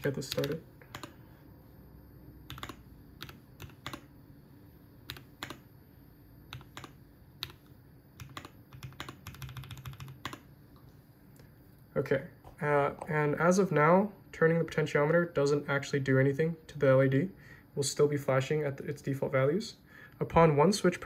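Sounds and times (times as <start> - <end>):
typing on computer keyboard: 0.0 - 1.1, 2.5 - 4.1, 5.1 - 5.6, 6.5 - 7.6, 8.2 - 10.4.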